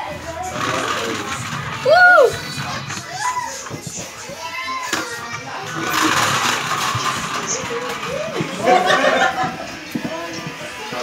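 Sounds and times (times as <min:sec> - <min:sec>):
children calling and chattering: 0:00.0 - 0:11.0.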